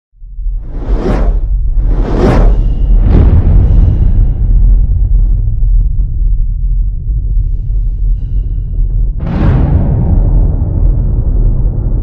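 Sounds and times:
deep low rumble: 0.2s - 12.0s
cinematic whoosh: 0.4s - 6.1s.

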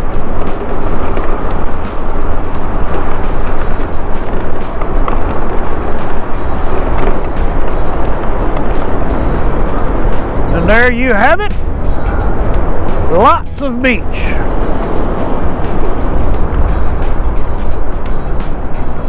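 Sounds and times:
background music: 0.0s - 19.0s
wind buffeting microphone: 0.0s - 19.0s.

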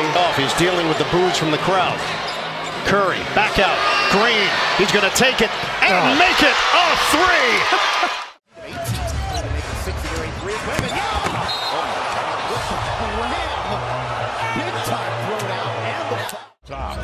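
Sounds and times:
low arena music: 8.6s - 11.1s.

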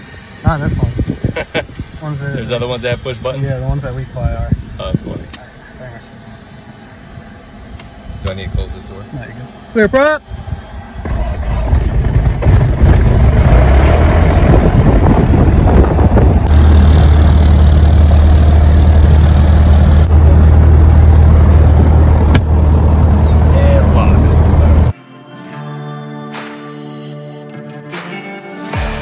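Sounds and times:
aircraft engine starting and running: 0.0s - 25.0s.

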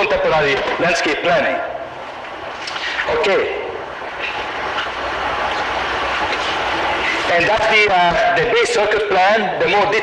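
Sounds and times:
steady rumbling with low hum: 0.0s - 10.0s.

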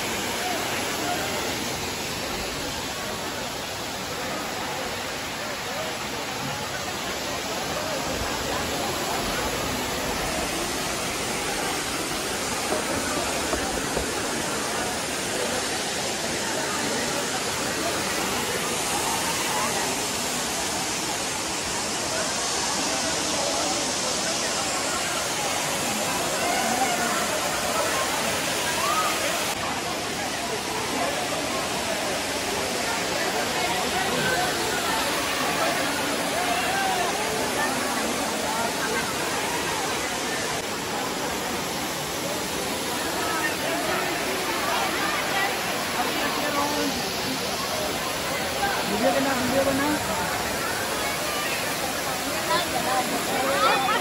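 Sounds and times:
people chattering: 0.0s - 54.0s
waterfall rushing: 0.0s - 54.0s.

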